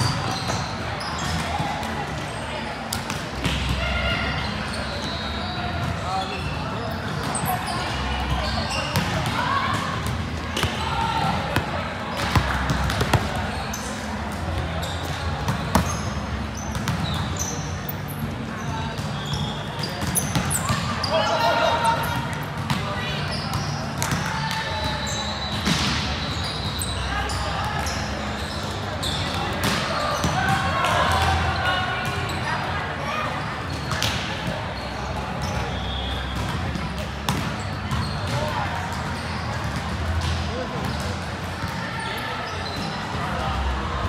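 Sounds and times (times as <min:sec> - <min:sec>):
ball bouncing on court floor: 0:08.8 - 0:13.6, 0:15.4 - 0:17.5, 0:19.0 - 0:21.0, 0:22.2 - 0:22.9, 0:33.8 - 0:34.5, 0:36.3 - 0:41.1.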